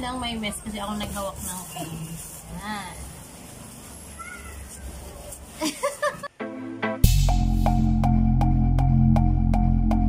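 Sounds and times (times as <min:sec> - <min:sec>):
laughter: 0:05.6 - 0:06.4.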